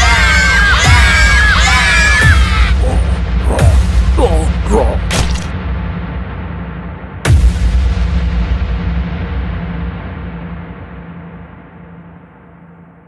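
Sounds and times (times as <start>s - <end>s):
low dark drone: 0.0s - 13.0s
deep cinematic boom: 3.2s - 12.0s.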